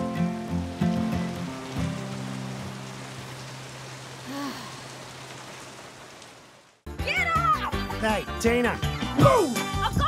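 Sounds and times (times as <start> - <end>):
steady rain falling: 0.0 - 7.5.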